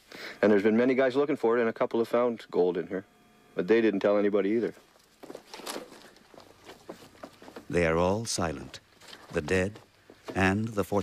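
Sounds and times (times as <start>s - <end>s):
footsteps on dirt trail: 4.6s - 11.0s.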